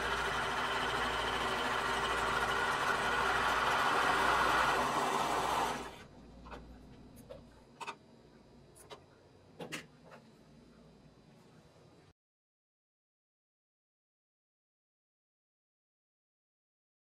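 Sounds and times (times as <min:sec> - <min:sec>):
overlock sewing machine running: 0:00.0 - 0:06.0.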